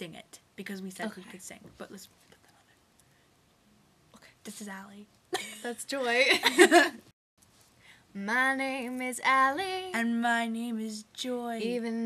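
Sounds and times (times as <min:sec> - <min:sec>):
faint whispering: 0:02.1 - 0:02.8.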